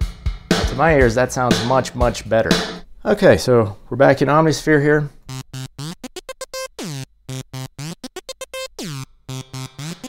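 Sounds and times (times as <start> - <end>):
synthesizer stuttering short notes: 5.3 - 10.0.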